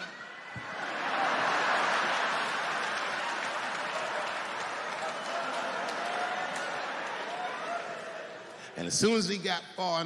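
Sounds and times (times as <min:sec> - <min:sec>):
audience laughing: 0:00.6 - 0:04.2
audience applauding: 0:00.6 - 0:08.7.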